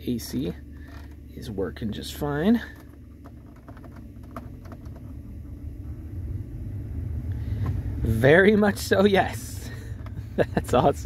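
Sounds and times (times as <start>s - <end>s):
car blower fan rushing air: 0.0s - 11.0s.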